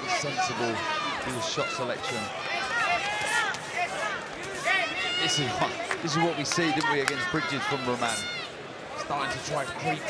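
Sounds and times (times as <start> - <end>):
crowd noise: 0.0 - 10.0
people shouting: 0.2 - 5.6.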